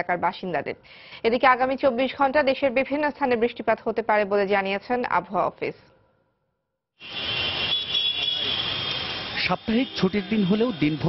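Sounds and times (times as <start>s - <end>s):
heavy rain hiss: 7.0s - 11.0s
road traffic: 7.0s - 11.0s.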